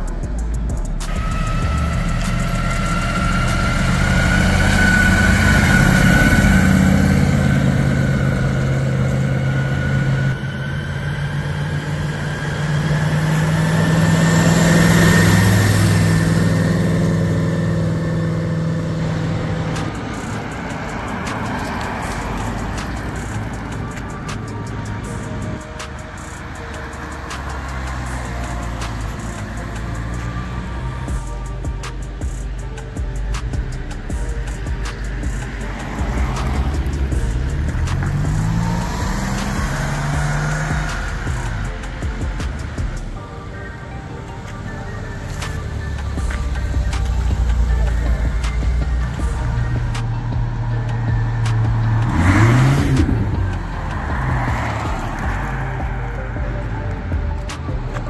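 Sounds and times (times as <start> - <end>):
background music: 0.0 - 58.0
sports cars accelerating past: 0.0 - 58.0.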